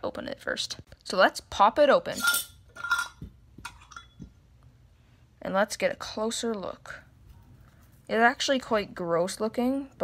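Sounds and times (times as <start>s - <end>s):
metal lid scraping on glass jar: 2.1s - 4.2s.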